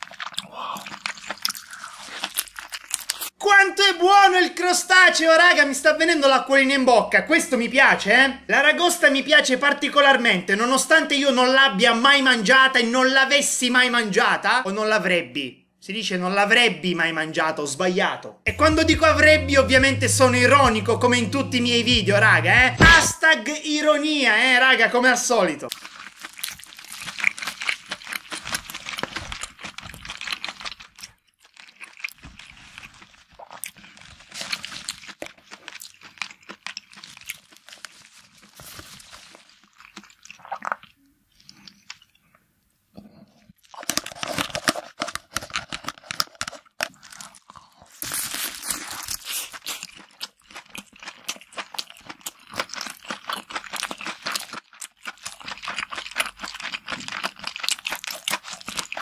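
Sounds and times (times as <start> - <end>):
crunching and wet chewing: 0.0 - 3.4, 25.7 - 42.4, 43.0 - 59.0.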